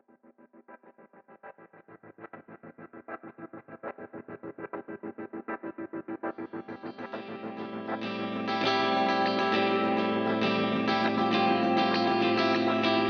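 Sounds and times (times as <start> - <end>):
electric guitar pulsed notes: 6.4 - 13.0
sustained metal music layer: 6.6 - 13.0.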